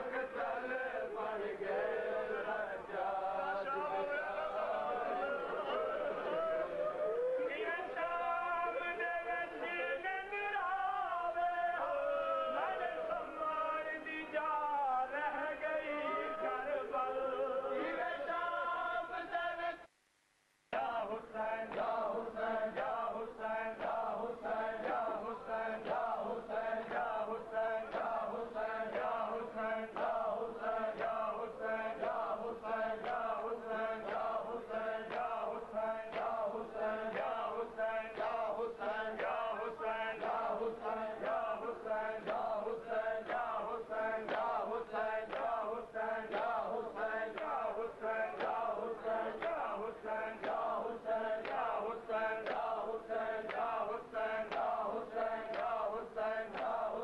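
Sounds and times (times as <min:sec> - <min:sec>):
men chanting a lament: 0:00.0 - 0:19.9, 0:20.7 - 0:57.0
rhythmic chest-beating: 0:20.8 - 0:57.0.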